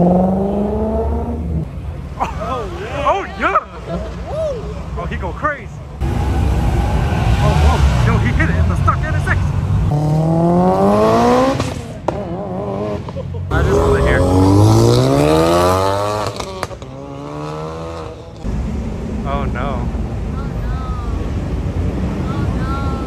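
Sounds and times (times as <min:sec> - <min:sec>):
car engines accelerating hard: 0:00.0 - 0:23.0
spectators' voices: 0:02.1 - 0:06.3.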